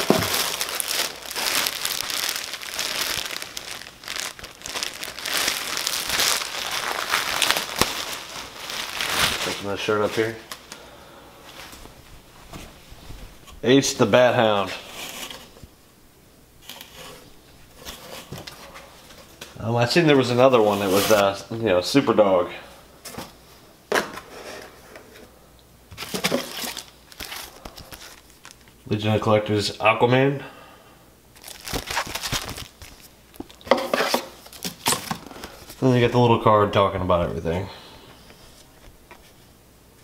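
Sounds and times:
fabric rustling: 0.0 - 10.8, 11.4 - 13.6
plastic bag crinkling: 0.0 - 10.9, 26.0 - 28.8, 31.4 - 36.0.

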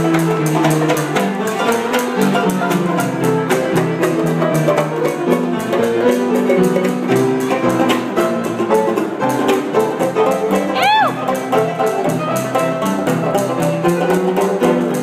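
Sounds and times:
banjo picking: 0.0 - 15.0
upright piano ragtime: 0.0 - 15.0.

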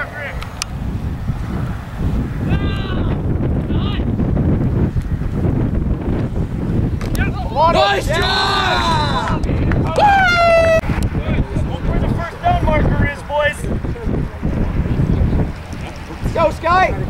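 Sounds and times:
wind buffeting microphone: 0.0 - 17.0
people shouting and yelling: 2.4 - 4.1, 7.1 - 14.4.

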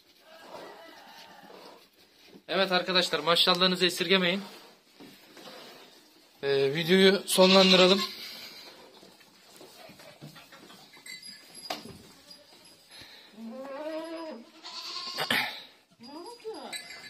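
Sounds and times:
goats and sheep bleating: 6.7 - 8.7, 12.1 - 15.6
knocks and rustles: 8.9 - 12.8.

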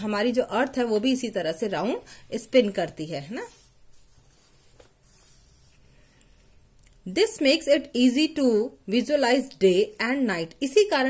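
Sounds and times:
pen rustling on paper: 3.1 - 6.1.

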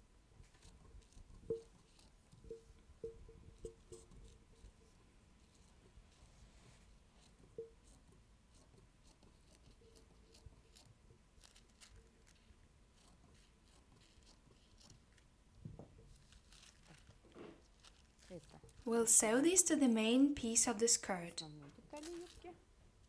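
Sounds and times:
scissors snipping paper: 7.8 - 15.3, 16.2 - 18.8, 22.0 - 22.5.

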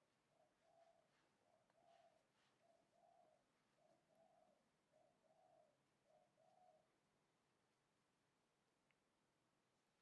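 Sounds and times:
faint dove cooing: 0.3 - 6.9.

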